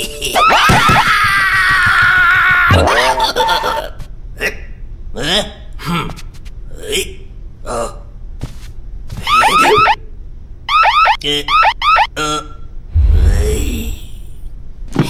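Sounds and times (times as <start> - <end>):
security gate alarm chirps: 9.3 - 10.0, 10.7 - 12.1.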